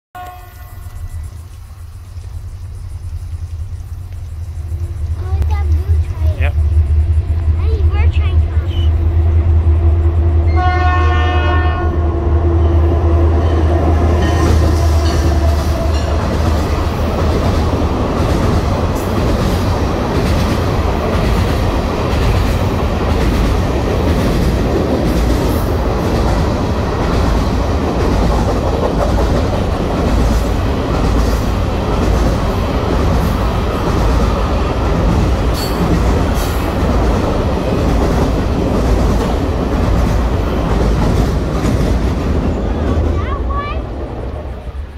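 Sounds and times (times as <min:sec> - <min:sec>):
train horn: 0:00.1 - 0:01.3, 0:10.4 - 0:16.1
train wheels clacking on bridge: 0:12.8 - 0:43.8.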